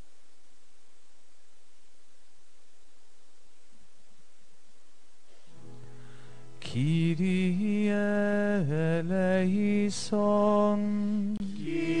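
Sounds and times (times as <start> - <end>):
person singing a hymn: 6.6 - 12.0.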